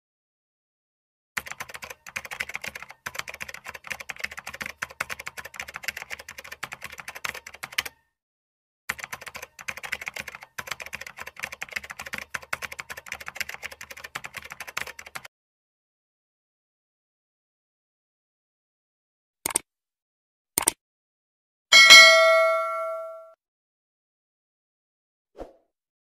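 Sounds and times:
rapid keyboard typing clicks: 1.4s - 8.0s, 8.9s - 15.3s.

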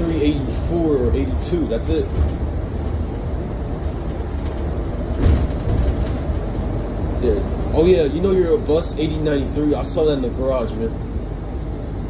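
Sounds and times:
bus interior rumble: 0.0s - 12.0s
thump: 5.2s - 6.2s.

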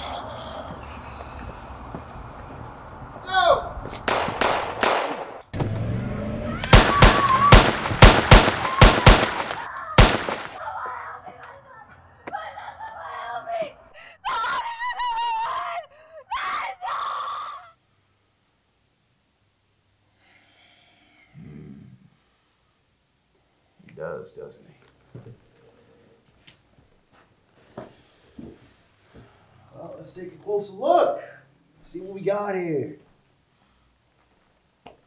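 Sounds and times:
gunshots: 4.0s - 5.8s, 6.6s - 10.6s
person crying out and wailing: 14.2s - 17.7s.

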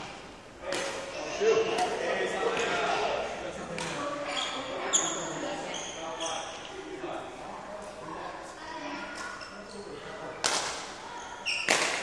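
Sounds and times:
shoe squeaks: 4.2s - 6.8s, 9.3s - 10.0s, 11.1s - 11.8s
rackets striking shuttlecocks: 11.6s - 12.0s.

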